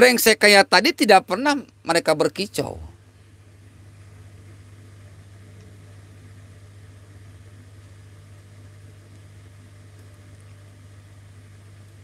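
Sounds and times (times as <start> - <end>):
low hum: 1.3 - 12.0.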